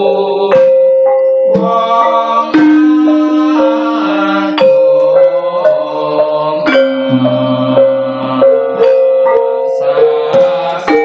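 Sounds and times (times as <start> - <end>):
metallophones and gongs struck: 0.0 - 11.0
deep sustained tone: 1.1 - 11.0.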